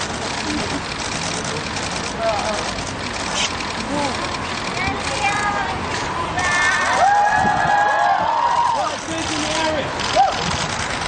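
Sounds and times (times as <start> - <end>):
crowd voices calling out: 3.8 - 10.6.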